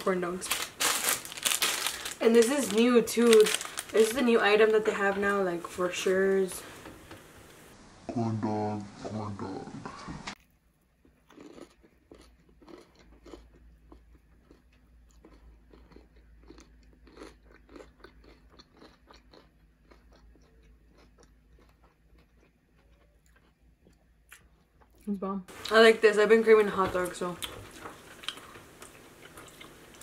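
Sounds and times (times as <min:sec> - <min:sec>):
chewing crunchy fried food: 0:10.4 - 0:25.8, 0:27.4 - 0:30.0.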